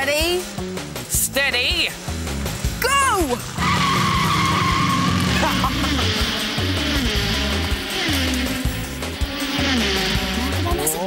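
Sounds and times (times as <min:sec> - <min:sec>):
upbeat background music: 0:00.0 - 0:11.0
tyre screech sound effect: 0:03.5 - 0:05.6
person laughing: 0:05.1 - 0:06.3.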